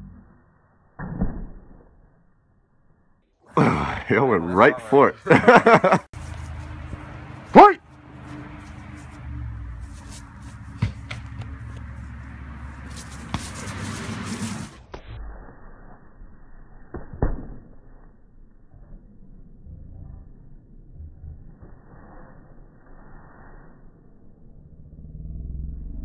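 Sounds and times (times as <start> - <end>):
loud voice cry: 3.5 - 5.2, 7.6 - 7.8
person laughing: 5.1 - 6.1
low steady rumble: 24.4 - 26.0.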